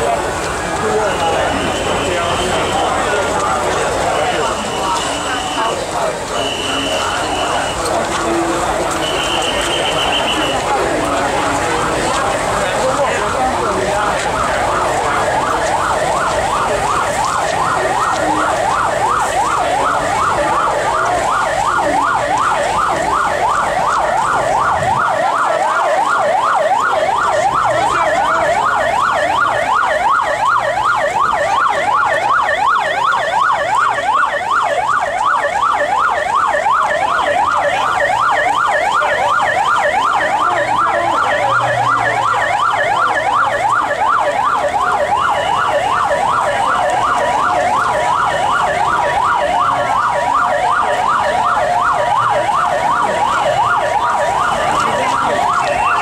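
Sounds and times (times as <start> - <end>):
vehicle siren yelping: 0.0 - 56.0.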